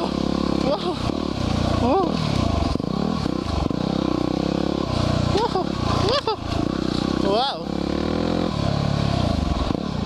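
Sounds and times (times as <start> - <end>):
motorcycle engine under throttle: 0.0 - 10.0
person calling out: 5.3 - 6.4.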